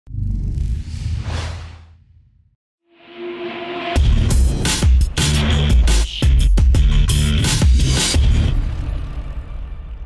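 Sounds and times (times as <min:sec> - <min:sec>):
whoosh sound effect: 0:00.8 - 0:02.0.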